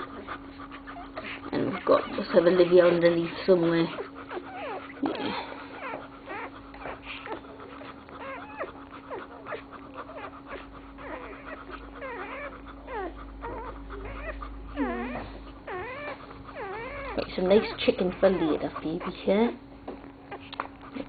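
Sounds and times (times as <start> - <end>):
puppies squeaking and whimpering: 0.0 - 21.0
steady hum: 0.0 - 21.0.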